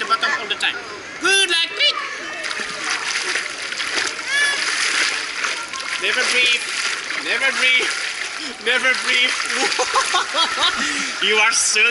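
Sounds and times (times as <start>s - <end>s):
pool water splashing: 0.0s - 11.9s.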